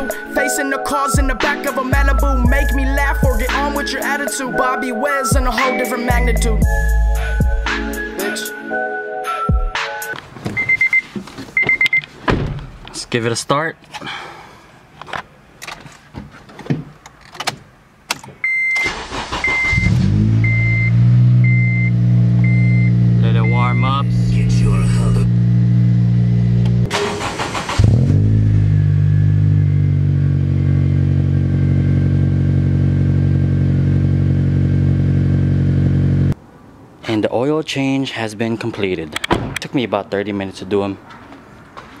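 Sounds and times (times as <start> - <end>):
car engine idling: 18.9 - 36.4
electronic chime beeping: 19.5 - 24.3.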